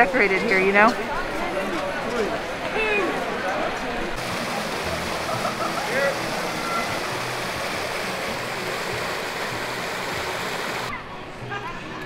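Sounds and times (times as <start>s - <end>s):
running water rushing: 4.2s - 10.9s.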